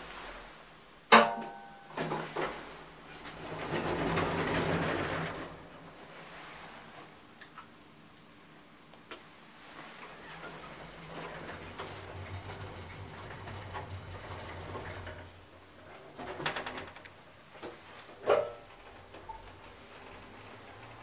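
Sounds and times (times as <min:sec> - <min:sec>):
elevator doors sliding shut: 0:02.0 - 0:06.4, 0:09.9 - 0:21.0.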